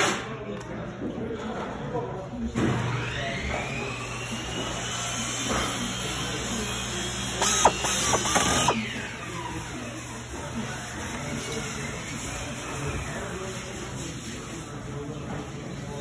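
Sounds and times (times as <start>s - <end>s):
power screwdriver motor whine: 7.3s - 8.8s
screwdriver clicking: 7.4s - 8.8s.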